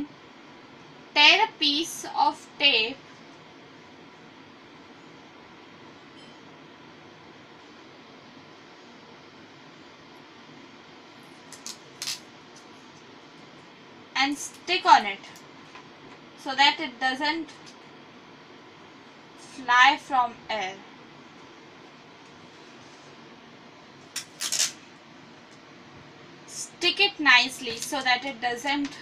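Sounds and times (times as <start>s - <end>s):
adhesive tape tearing: 11.5s - 12.2s, 24.2s - 24.8s.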